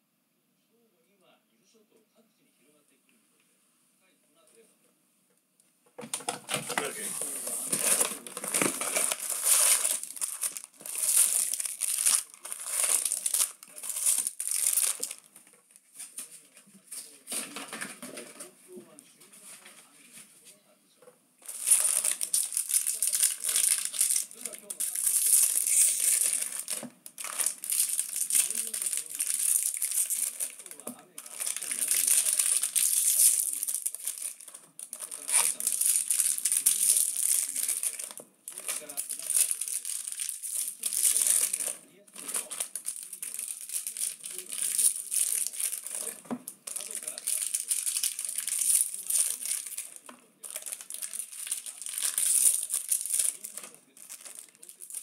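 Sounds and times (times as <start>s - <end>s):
foil wrappers crinkling: 6.0s - 18.5s, 21.4s - 55.0s.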